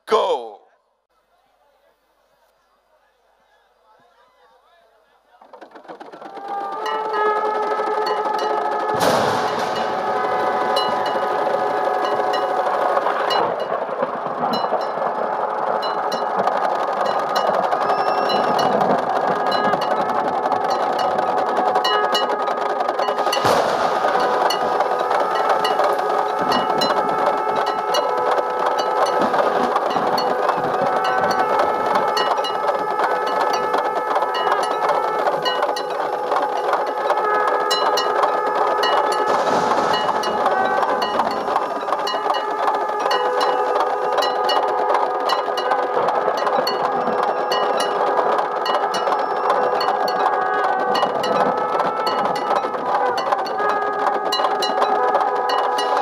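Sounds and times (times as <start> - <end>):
conch shells blown: 6.2 - 56.0.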